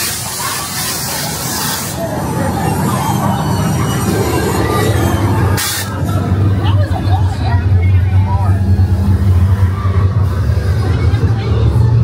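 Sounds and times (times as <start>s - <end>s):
voices: 0.0s - 12.0s
low rumble: 2.1s - 12.0s
sharp hiss of air: 5.6s - 6.0s.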